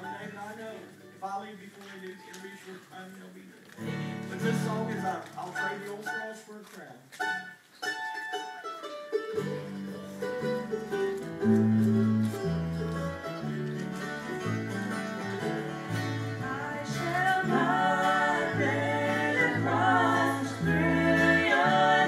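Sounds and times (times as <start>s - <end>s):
acoustic guitars and mandolin: 0.0s - 3.0s, 3.6s - 22.0s.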